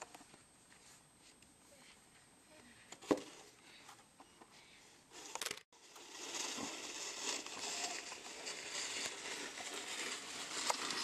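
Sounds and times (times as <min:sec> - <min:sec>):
faint snow crunches: 0:05.8 - 0:11.0
snow shovel scraping snow: 0:05.8 - 0:11.0.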